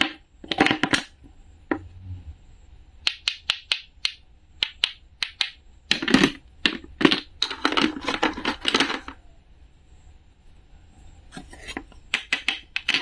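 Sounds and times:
wooden toy clicks: 0:03.0 - 0:09.2, 0:12.1 - 0:13.0
wooden toy food clattering: 0:05.9 - 0:09.2, 0:12.1 - 0:13.0.

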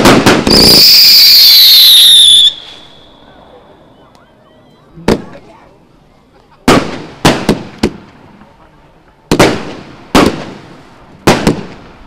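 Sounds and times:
firework whistle: 0:00.0 - 0:04.3.

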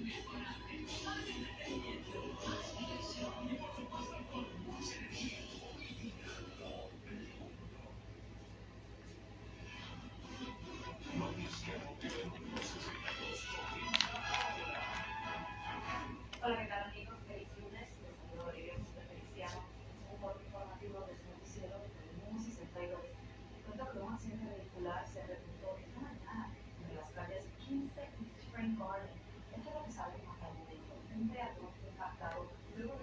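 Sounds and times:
faint indistinct speech: 0:00.0 - 0:33.0
steady low hum: 0:00.0 - 0:33.0
television music and voices: 0:00.0 - 0:33.0.

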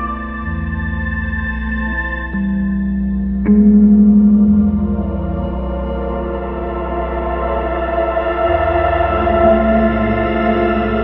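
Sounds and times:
guitars with echo effects: 0:00.0 - 0:11.0
low fluttering drone: 0:00.0 - 0:11.0.

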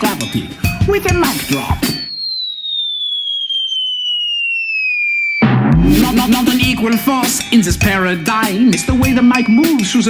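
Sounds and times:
cartoon falling whistle: 0:01.3 - 0:07.0.

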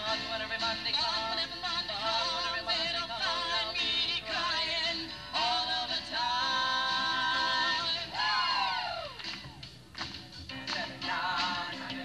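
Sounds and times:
backing music: 0:00.0 - 0:12.0.

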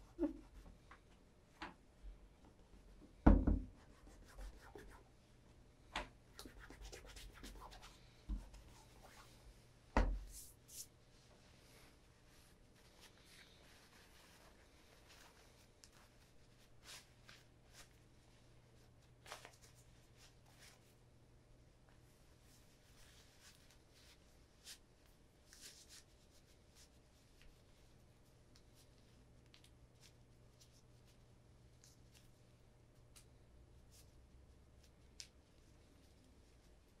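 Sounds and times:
faint low hum: 0:00.0 - 0:37.0
soft rustles and clicks: 0:10.2 - 0:21.0, 0:21.8 - 0:37.0.

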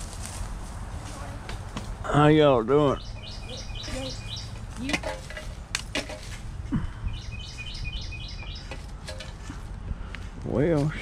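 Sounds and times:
songbird chirping: 0:00.9 - 0:05.5, 0:06.7 - 0:10.2.

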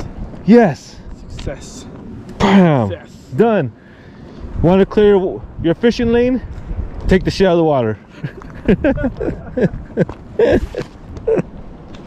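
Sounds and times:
person laughing: 0:08.1 - 0:11.6.

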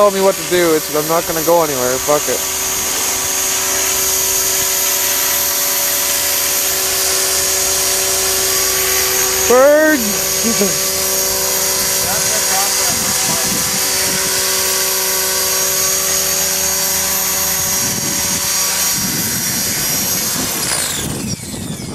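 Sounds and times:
rc helicopter motor whining: 0:00.0 - 0:21.9.

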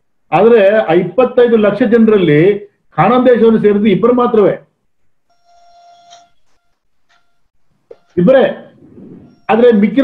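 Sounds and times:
faint steady tone: 0:05.2 - 0:10.0.

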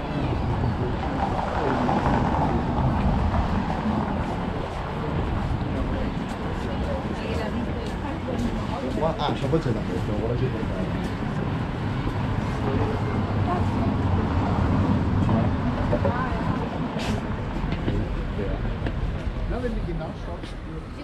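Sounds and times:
low rumble of traffic: 0:00.0 - 0:21.0
passersby talking: 0:00.0 - 0:21.0.

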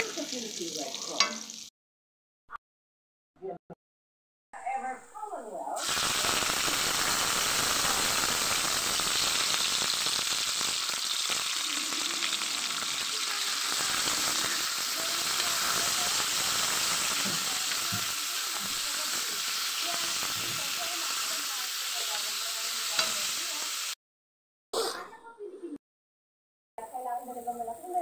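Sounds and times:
garlic and onion sizzling in oil: 0:00.0 - 0:01.7, 0:05.8 - 0:24.0, 0:26.8 - 0:28.0.

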